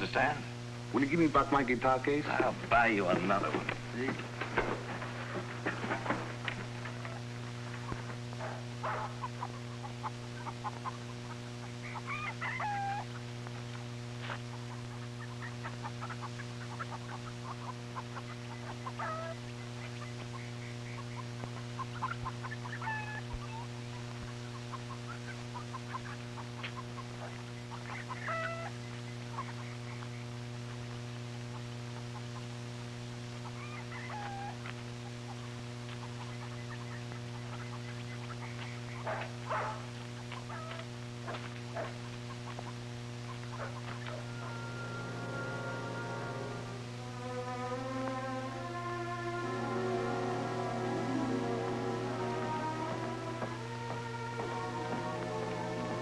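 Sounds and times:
steady low hum: 0.0s - 56.0s
chickens clucking: 1.0s - 46.9s, 47.5s - 56.0s.

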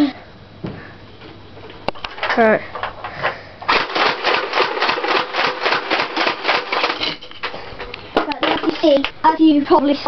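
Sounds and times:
faint motor hum: 0.0s - 10.0s.

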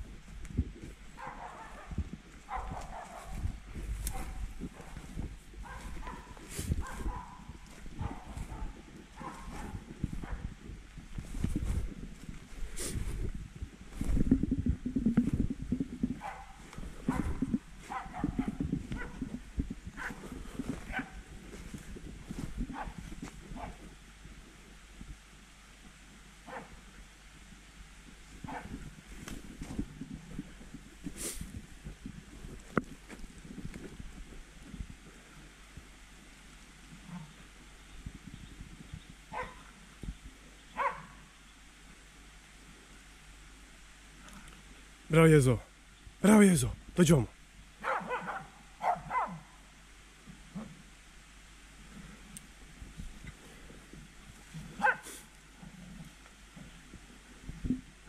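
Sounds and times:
dogs barking: 1.2s - 10.5s, 16.2s - 19.4s, 20.0s - 20.2s, 20.8s - 21.2s, 26.4s - 26.8s, 28.5s - 28.8s, 39.3s - 39.7s, 40.8s - 41.2s, 47.8s - 49.5s, 54.8s - 55.2s
low thumps on microphone: 1.9s - 23.5s.

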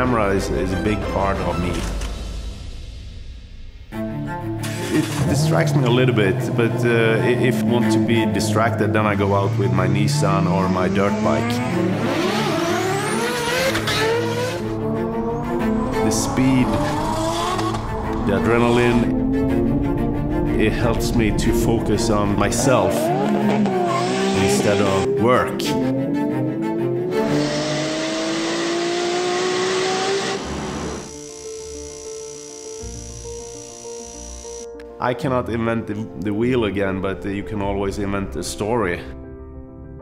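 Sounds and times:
background music: 0.0s - 40.0s
car engine accelerating: 4.5s - 31.3s.

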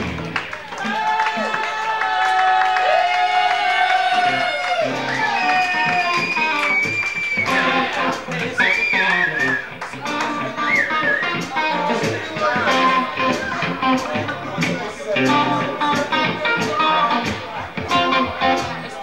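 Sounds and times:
electric guitar bending notes: 0.0s - 0.6s, 4.2s - 19.0s
blues band playing: 0.0s - 1.7s, 3.3s - 19.0s.

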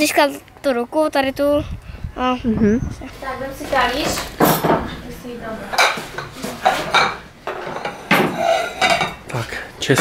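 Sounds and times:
ceramic plates clattering: 4.0s - 5.0s, 5.7s - 9.2s.

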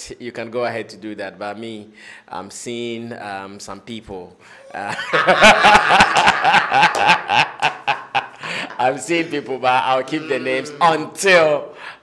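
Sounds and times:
men laughing loudly: 4.6s - 11.1s.

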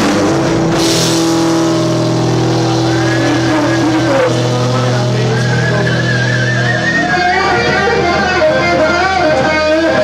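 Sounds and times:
rock band distorted chord: 0.0s - 10.0s
high wavering note: 0.7s - 9.2s.

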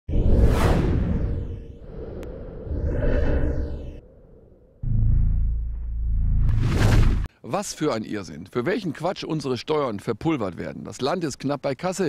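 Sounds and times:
whoosh: 0.1s - 7.3s
deep low rumble: 1.0s - 7.3s.

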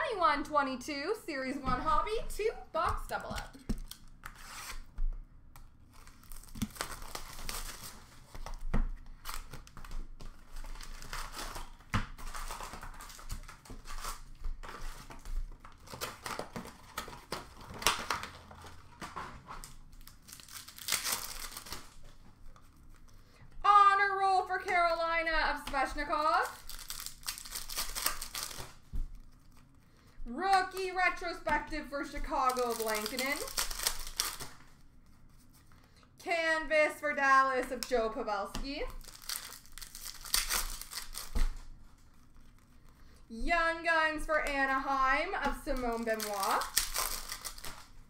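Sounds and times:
plastic wrapping tearing and crinkling: 3.2s - 5.0s, 5.6s - 23.2s, 24.5s - 35.8s, 38.7s - 43.0s, 44.8s - 48.0s.

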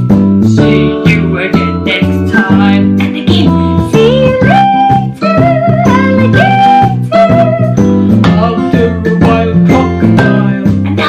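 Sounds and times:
instrumental backing: 0.0s - 11.0s
woman singing children's song: 0.5s - 11.0s.

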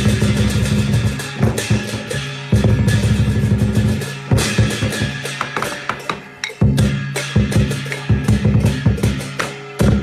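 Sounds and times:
fast rolling drum beat: 0.0s - 10.0s
loud cymbal crash: 0.0s - 10.0s.

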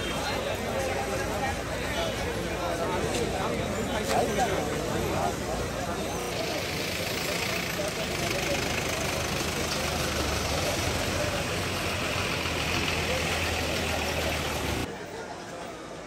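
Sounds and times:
crowd voices: 0.0s - 16.0s
large vehicle engine idling: 5.8s - 14.9s.

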